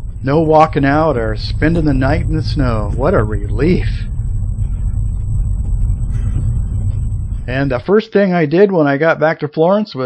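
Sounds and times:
car driving low rumble: 0:00.0 - 0:08.0.

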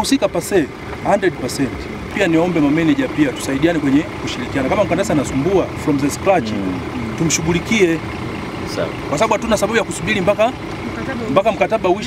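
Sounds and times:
man talking: 0:00.0 - 0:08.0.

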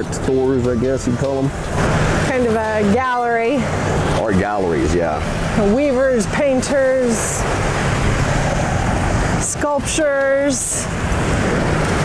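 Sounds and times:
wind noise on microphone: 0:07.0 - 0:12.0.

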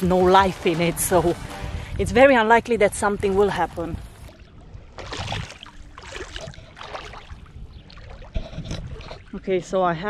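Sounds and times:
water lapping over pebbles: 0:03.6 - 0:10.0.

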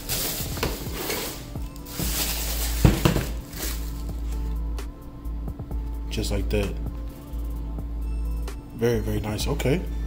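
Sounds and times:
tissue paper rustling: 0:00.0 - 0:04.4
background music: 0:00.0 - 0:10.0.

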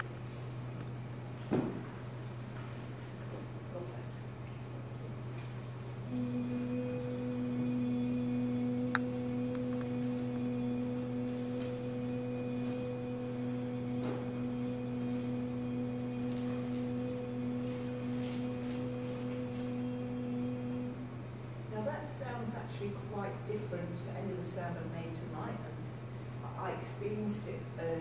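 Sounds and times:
faint background hum: 0:00.0 - 0:28.0
steady low tone: 0:06.0 - 0:21.9.

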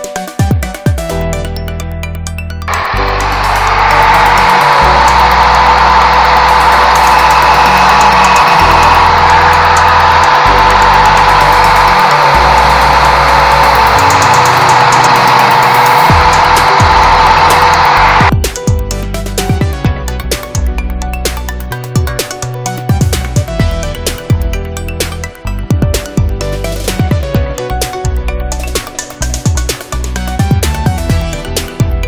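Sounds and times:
electronic background music: 0:00.0 - 0:32.0
angle grinder grinding metal: 0:02.7 - 0:18.3.

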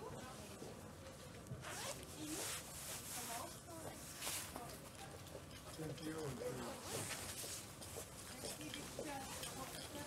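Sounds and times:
zipper being pulled: 0:01.6 - 0:02.9.

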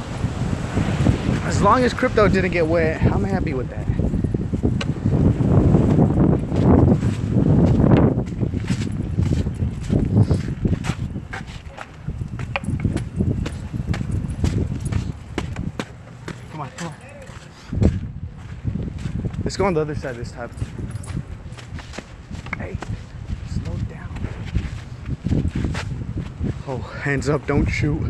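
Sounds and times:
longboard wheels rumbling: 0:00.0 - 0:16.7.

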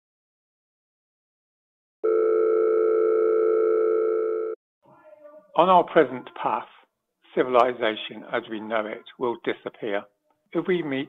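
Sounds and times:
long electronic telephone tone: 0:02.0 - 0:04.6.

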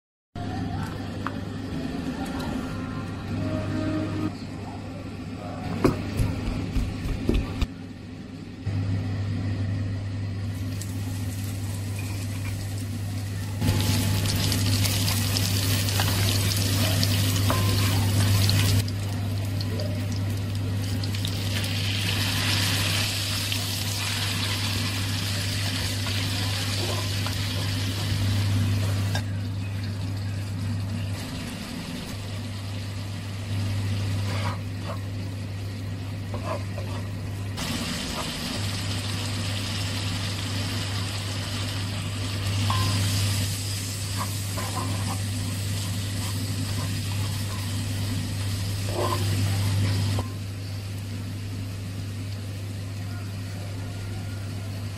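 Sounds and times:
steady low hum: 0:00.4 - 0:53.8.

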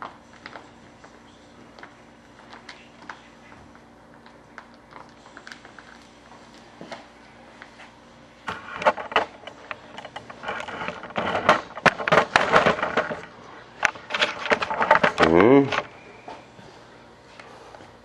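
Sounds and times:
paper crackling and crinkling: 0:00.2 - 0:07.9
clicks and scraping on paper: 0:04.2 - 0:07.9, 0:08.5 - 0:15.9.

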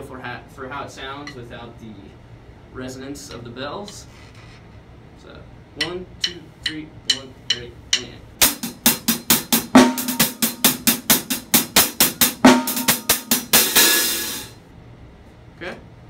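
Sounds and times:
hi-hat struck with drumsticks: 0:05.8 - 0:14.6.

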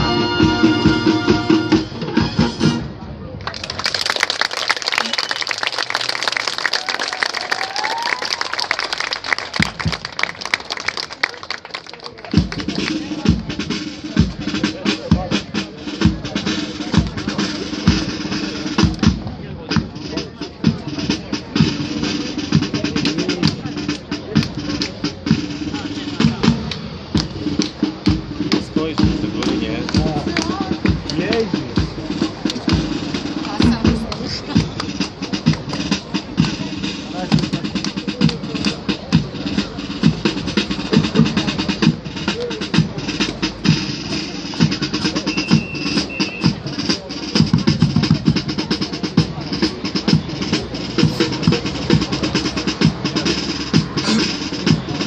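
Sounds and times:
drum beats: 0:00.0 - 0:02.9, 0:04.9 - 0:55.0
brass band playing: 0:00.0 - 0:03.0, 0:38.5 - 0:55.0.

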